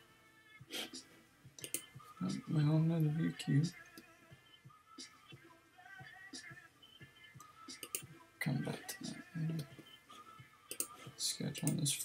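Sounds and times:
computer mouse clicks: 1.6s - 1.9s, 10.7s - 11.0s.

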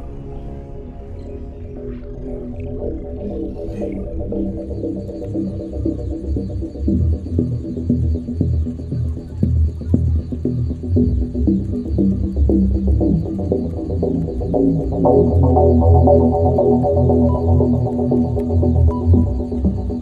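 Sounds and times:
low throbbing ambient drone: 0.0s - 20.0s
held higher tone chord: 14.9s - 20.0s.

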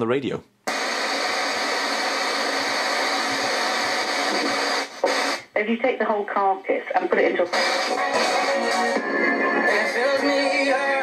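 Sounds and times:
radio static hiss: 0.7s - 11.0s.

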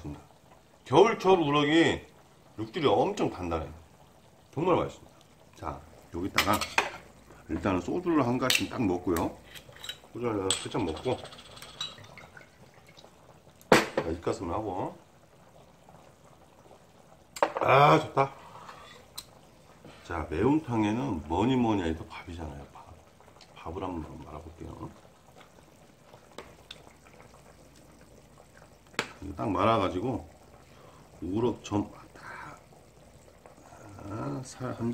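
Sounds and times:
liquid trickling into glass: 9.2s - 13.2s.

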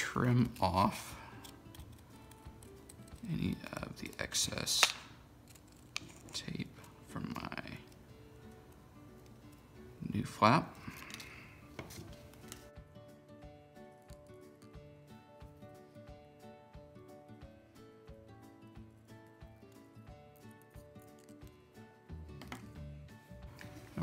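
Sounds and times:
quiet instrumental music: 0.0s - 24.0s
scissors snipping tape: 1.3s - 3.4s, 4.0s - 6.6s.

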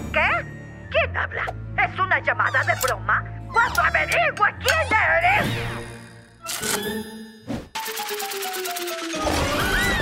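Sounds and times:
background music: 0.0s - 10.0s
squeaky cartoon creature voices: 2.4s - 5.8s.

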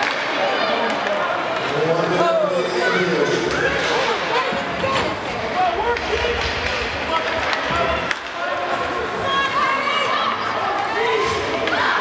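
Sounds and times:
spectators calling and shouting: 0.0s - 12.0s
hockey stick clacking on puck: 5.9s - 8.5s.

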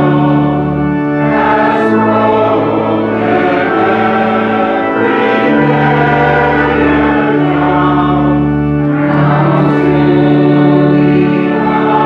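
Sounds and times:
congregation singing a hymn: 0.0s - 12.0s
organ: 0.0s - 12.0s.

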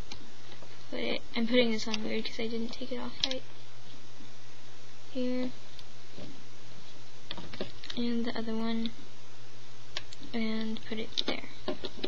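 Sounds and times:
steady low hum: 0.0s - 12.0s
plastic clicks and rattles: 10.0s - 12.0s.

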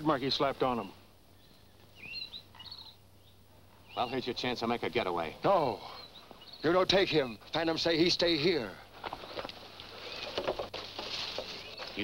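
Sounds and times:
faint background hiss: 0.0s - 12.0s
high-pitched bird chirps: 1.4s - 4.2s.

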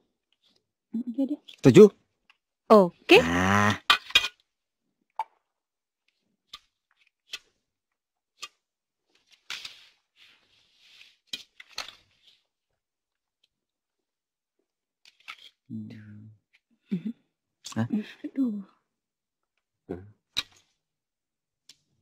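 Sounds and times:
playing cards clicking: 6.5s - 7.6s
soft rustle: 9.1s - 12.7s.

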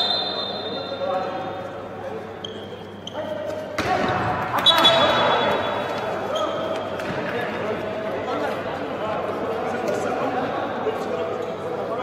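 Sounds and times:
referee's whistle blast: 0.0s - 1.0s, 4.6s - 5.6s.

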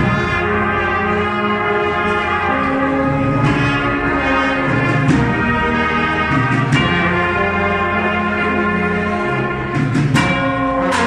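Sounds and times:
cornet and drum band playing: 0.0s - 11.0s
held bugle notes: 0.0s - 11.0s.

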